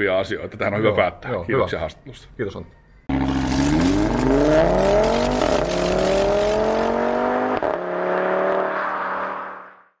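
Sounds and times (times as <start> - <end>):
car engine revving: 3.1 - 9.8.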